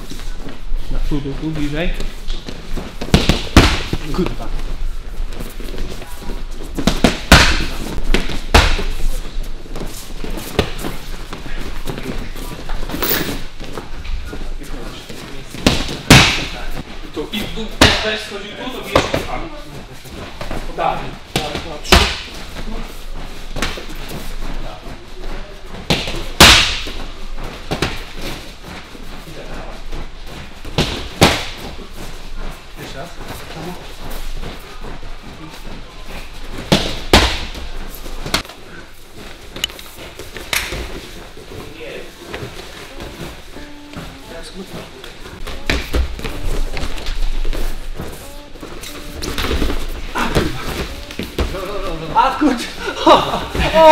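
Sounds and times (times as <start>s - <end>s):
boxing gloves hitting focus mitts: 2.4s - 4.4s, 6.7s - 13.8s, 15.5s - 16.9s, 17.6s - 18.2s, 21.3s - 22.8s, 25.7s - 28.5s, 30.6s - 31.9s, 36.1s - 38.6s.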